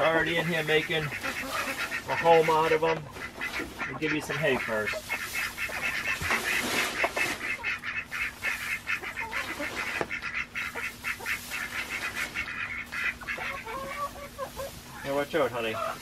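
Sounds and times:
dry hay rustling: 0.0s - 16.0s
poultry calling: 0.0s - 16.0s.

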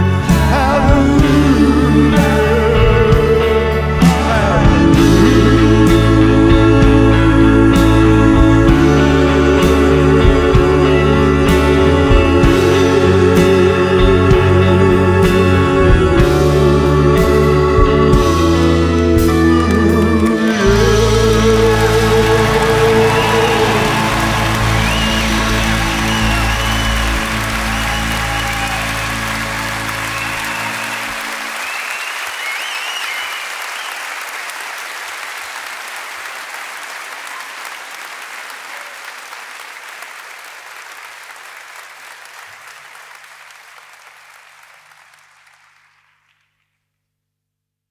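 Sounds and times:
band playing held chord: 0.0s - 32.4s
audience applauding: 18.8s - 46.6s.

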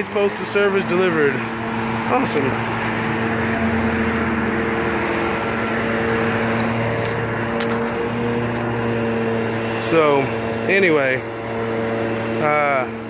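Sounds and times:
engine idling: 0.0s - 13.0s.

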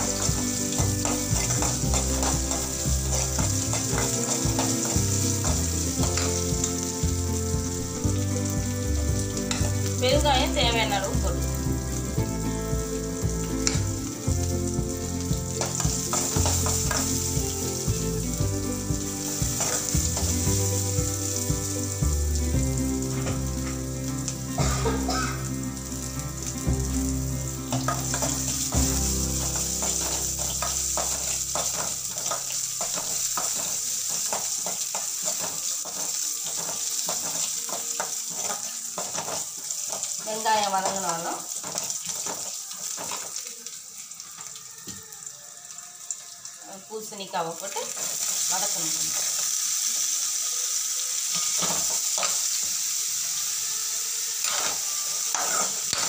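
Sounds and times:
garlic frying in hot oil: 0.0s - 56.0s
steel spoon scraping pan: 54.4s - 56.0s.

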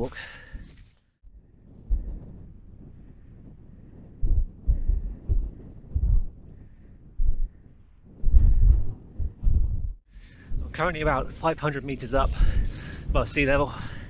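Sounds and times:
wind buffeting microphone: 1.4s - 14.0s.

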